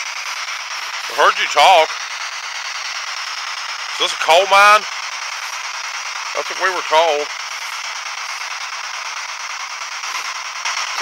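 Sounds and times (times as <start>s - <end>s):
static hiss: 0.0s - 11.0s.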